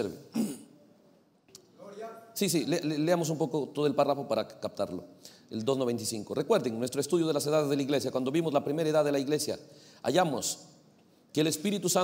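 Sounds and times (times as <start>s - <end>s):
man clearing his throat: 0.3s - 0.8s
man speaking: 1.6s - 12.0s.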